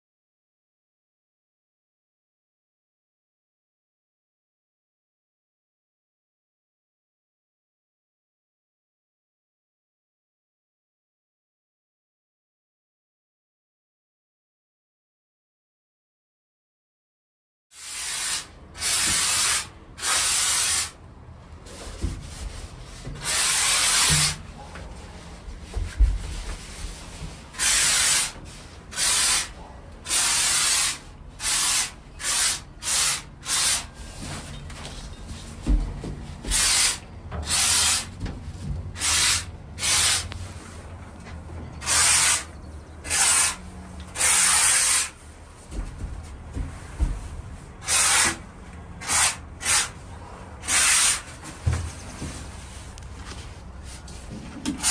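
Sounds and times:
spray foam gun hissing: 17.8s - 21.0s, 23.3s - 24.4s, 27.6s - 29.5s, 30.1s - 33.9s, 36.5s - 38.1s, 39.0s - 40.3s, 41.8s - 42.5s, 43.1s - 43.6s.

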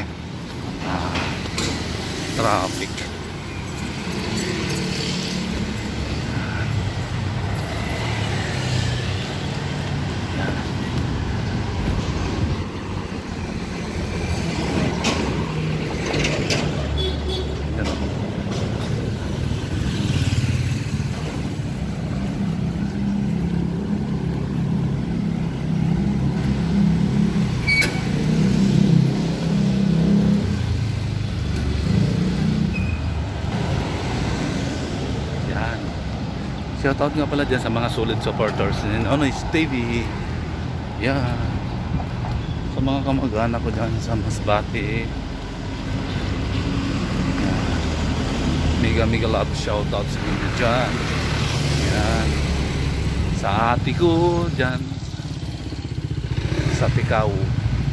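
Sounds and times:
motor vehicles passing: 0.0s - 57.9s.

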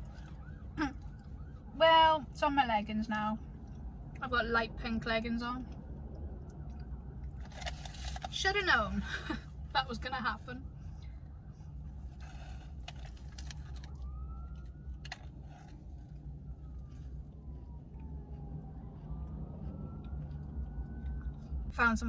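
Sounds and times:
distant siren wailing: 0.0s - 22.0s
food wrapper crackles: 7.3s - 8.5s, 12.1s - 16.2s.

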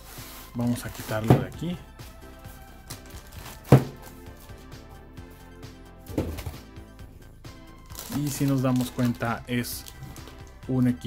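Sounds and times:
background music: 0.0s - 11.0s
car stereo set down on desk: 3.7s - 4.0s, 6.1s - 6.6s
handling knock: 3.8s - 4.0s, 6.1s - 6.6s.

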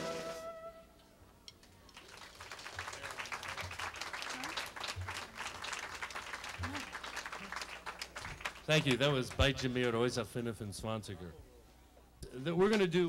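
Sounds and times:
audience applauding: 1.9s - 10.0s.

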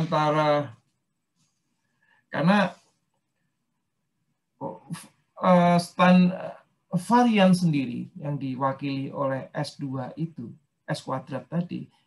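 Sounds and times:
man speaking: 0.0s - 0.8s, 2.4s - 2.8s, 4.6s - 12.0s.

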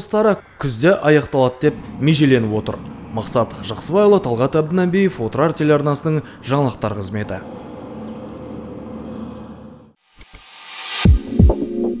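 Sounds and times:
steady background noise: 0.9s - 9.9s.

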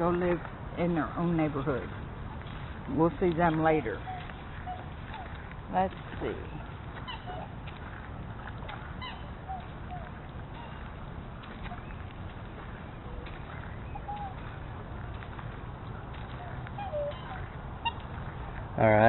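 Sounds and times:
steady low background noise: 0.0s - 19.0s
swans and ducks calling: 1.2s - 19.0s.

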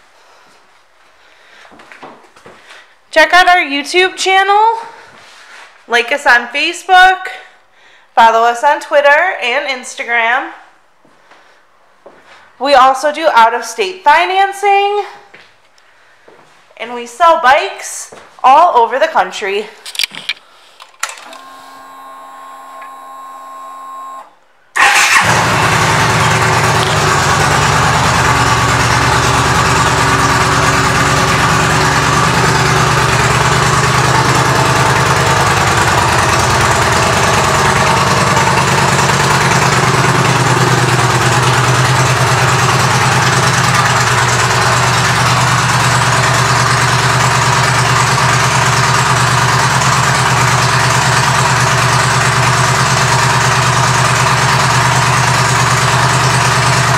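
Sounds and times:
motorcycle engine starting and idling: 21.0s - 56.9s.

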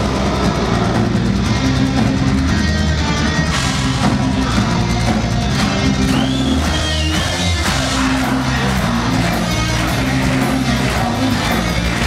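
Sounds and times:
live metal band playing: 0.0s - 12.0s.

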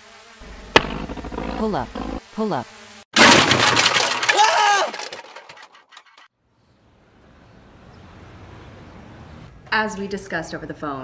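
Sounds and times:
pieces clattering: 3.2s - 6.3s.

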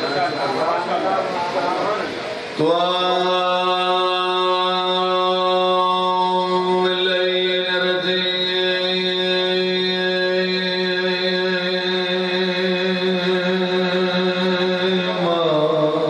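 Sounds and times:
amplified voice chanting long note: 2.6s - 16.0s.

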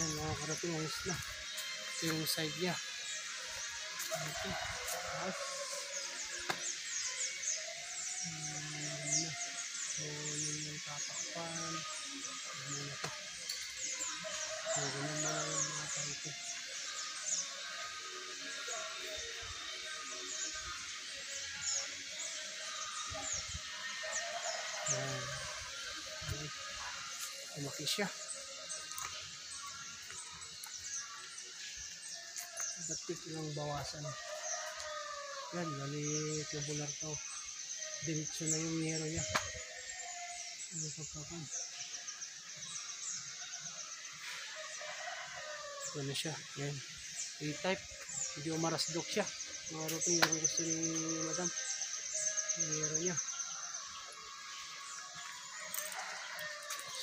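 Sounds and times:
birds chirping: 0.0s - 57.0s
rooster crowing: 4.0s - 6.4s, 14.0s - 16.2s, 23.8s - 26.2s, 33.8s - 36.0s, 44.2s - 46.2s, 52.3s - 57.0s.

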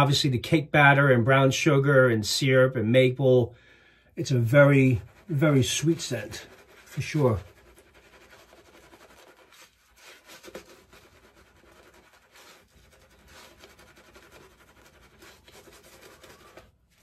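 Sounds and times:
shaving brush scrubbing lather: 4.2s - 17.0s.

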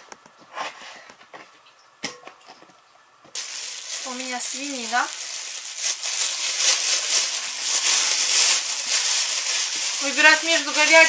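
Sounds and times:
plastic bag crinkling: 3.4s - 11.0s.

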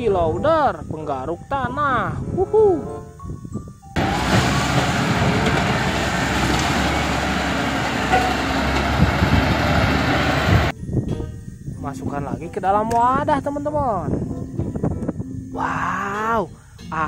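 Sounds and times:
wheel loader diesel engine: 4.0s - 10.7s.

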